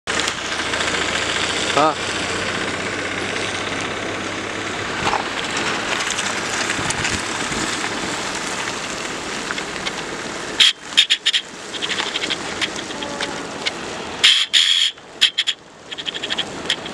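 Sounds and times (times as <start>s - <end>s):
car road and wind noise: 0.1s - 16.9s
sharp clicks: 10.6s - 16.9s
short wavering voice: 12.8s - 13.6s.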